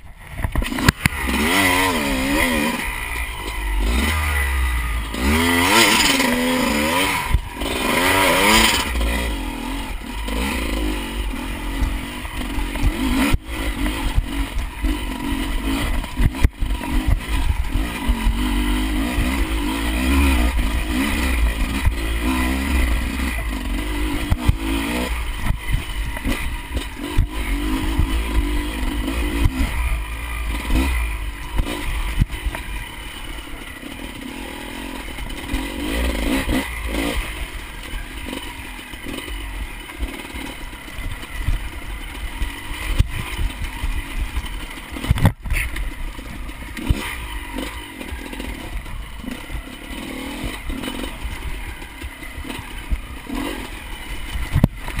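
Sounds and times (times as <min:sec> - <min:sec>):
bike rattling over rough track: 0:00.0 - 0:55.0
dirt bike engine revving: 0:00.0 - 0:55.0.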